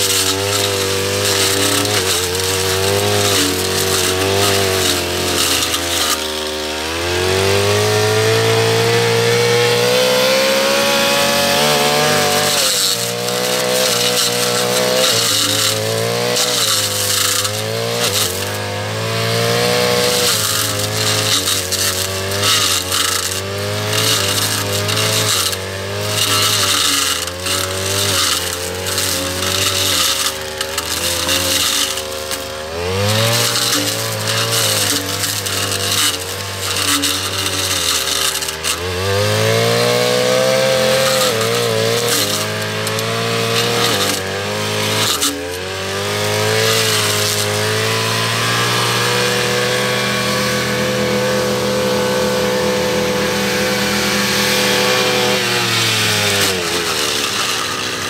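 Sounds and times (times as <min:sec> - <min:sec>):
blade cutting grass: 0:00.0 - 0:58.0
brush cutter engine running: 0:00.0 - 0:58.0.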